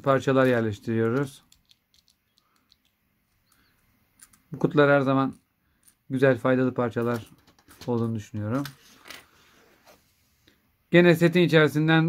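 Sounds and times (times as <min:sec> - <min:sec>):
plastic pieces clicking: 0:01.0 - 0:04.5.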